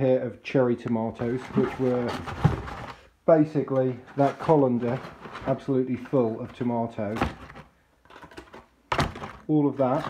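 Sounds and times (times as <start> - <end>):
faint handling sounds: 0.7 - 10.0.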